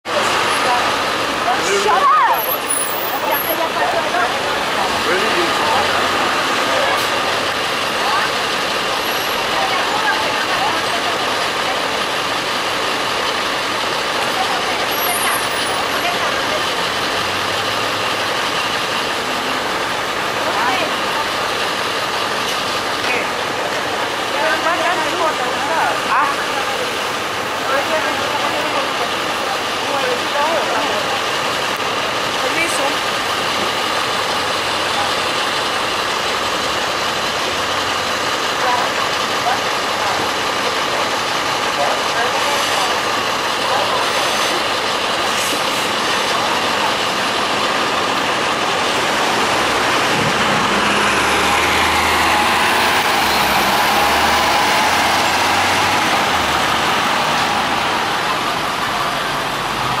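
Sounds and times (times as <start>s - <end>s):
bus diesel engine running: 0.0s - 60.0s
street traffic: 0.0s - 60.0s.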